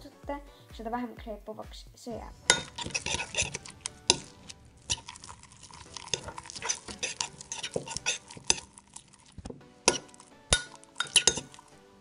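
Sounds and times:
metal spoon scraping ceramic bowl: 2.4 - 11.7.

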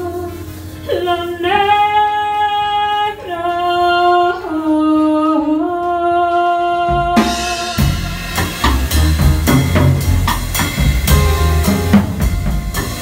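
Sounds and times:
woman singing long notes: 0.0 - 8.2.

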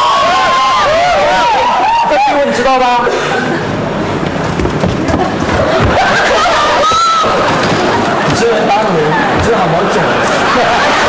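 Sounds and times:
feet thumping and scraping on stage: 4.2 - 9.8.

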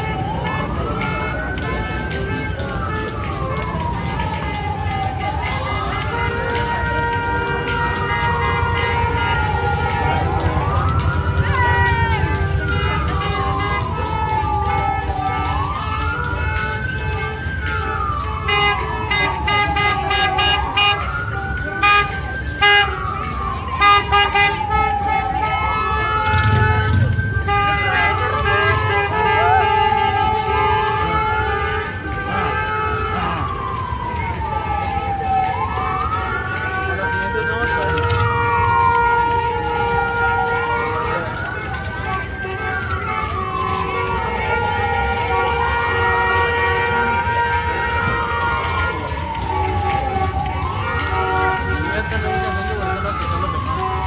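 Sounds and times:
crowd noise: 0.0 - 54.0
siren wailing: 0.0 - 54.0.

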